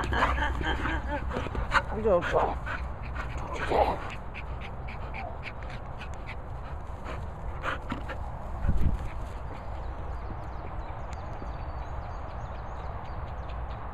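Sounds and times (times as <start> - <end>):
wind rumble on microphone: 8.0 - 13.9.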